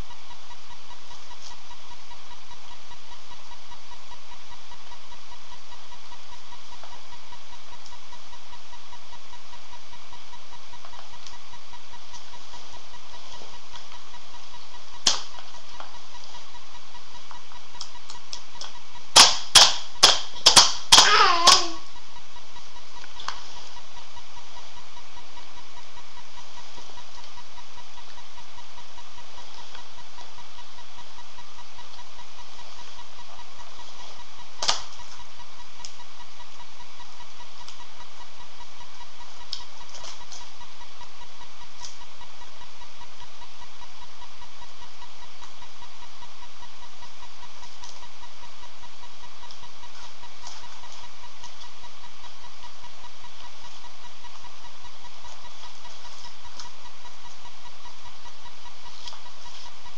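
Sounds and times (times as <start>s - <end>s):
electrical hum and buzz: 0.0s - 59.9s.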